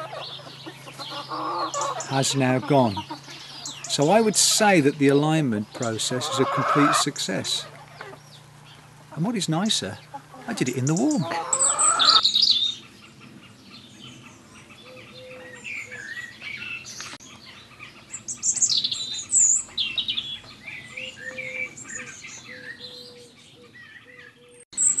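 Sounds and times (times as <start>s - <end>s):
songbirds singing: 0.0s - 25.0s.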